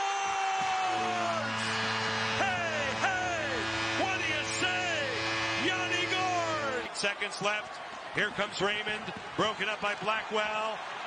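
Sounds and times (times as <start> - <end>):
loud falling whoops: 0.0 - 1.6
crowd cheering: 0.0 - 11.0
arena goal horn: 0.8 - 6.9.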